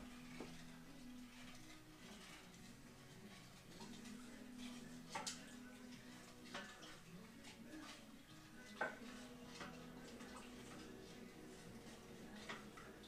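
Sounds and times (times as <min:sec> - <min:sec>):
spoon stirring tea in a pot: 0:00.0 - 0:13.0.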